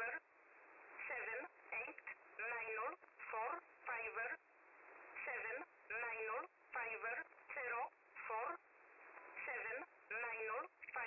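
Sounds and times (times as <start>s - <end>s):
voice reading numbers over radio: 0.0s - 0.2s, 1.0s - 4.4s, 5.2s - 8.6s, 9.4s - 11.0s
radio hiss: 0.0s - 11.0s.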